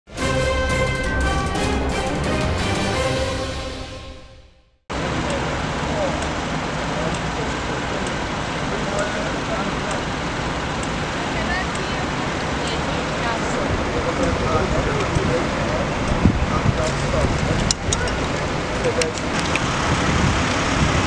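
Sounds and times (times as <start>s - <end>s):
intro theme music: 0.1s - 4.8s
road traffic: 0.1s - 21.0s
people talking: 5.0s - 10.1s, 11.1s - 19.3s.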